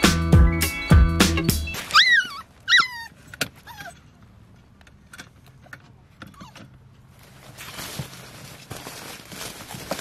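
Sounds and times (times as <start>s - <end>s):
puppy whining: 1.6s - 4.2s, 6.2s - 6.9s.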